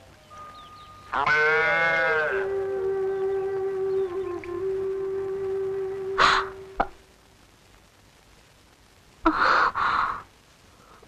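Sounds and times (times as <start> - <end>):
held musical note: 2.3 - 6.8.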